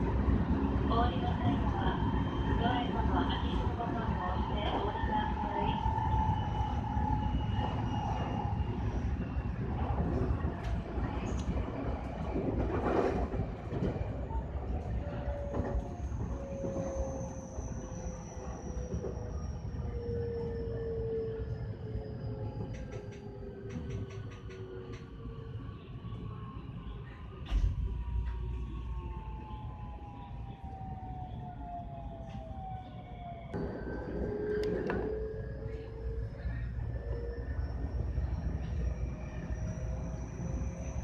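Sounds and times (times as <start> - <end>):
train rumbling on rails: 0.0 - 41.0.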